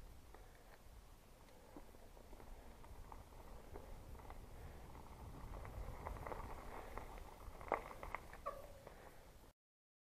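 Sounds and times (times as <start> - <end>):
bike rattles and clicks: 0.0 - 9.4
bike rolling over gravel: 0.0 - 9.4
bike squeak: 8.4 - 8.8.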